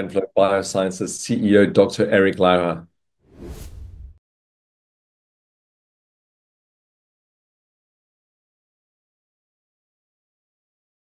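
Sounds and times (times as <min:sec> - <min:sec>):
whoosh transition effect: 0:03.3 - 0:04.2.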